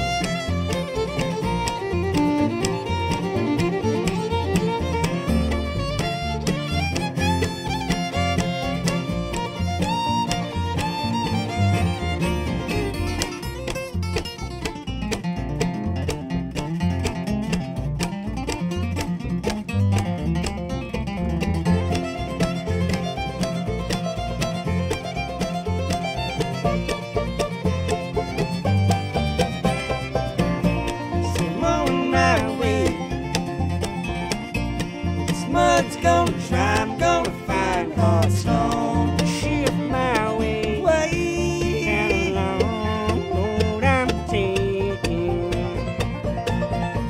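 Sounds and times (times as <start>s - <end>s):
acoustic guitar: 0.0s - 47.0s
banjo: 0.0s - 47.0s
fiddle: 0.0s - 47.0s
mandolin: 0.0s - 47.0s
upright bass: 0.0s - 47.0s.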